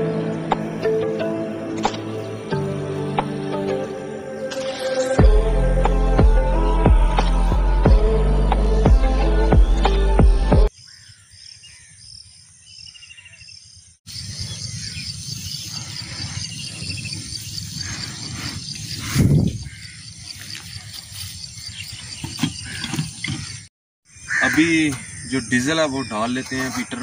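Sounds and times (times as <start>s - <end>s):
background music: 0.0s - 10.7s.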